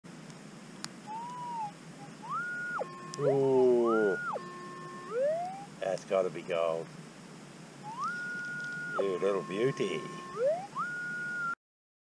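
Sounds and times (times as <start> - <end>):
metal detector tone: 1.1 - 5.7, 7.9 - 11.6.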